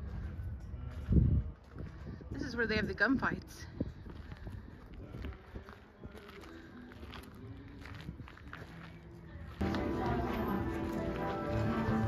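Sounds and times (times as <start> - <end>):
soft footsteps on dirt path: 0.0 - 12.0.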